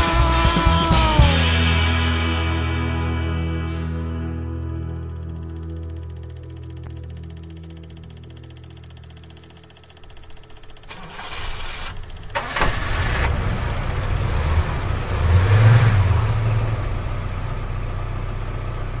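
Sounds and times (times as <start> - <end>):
engine starting and revving: 10.0 - 17.7.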